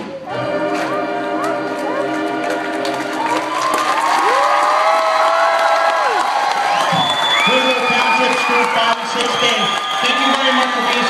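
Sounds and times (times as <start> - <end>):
audience applauding: 1.4 - 11.0
high whoops of cheering: 3.2 - 11.0.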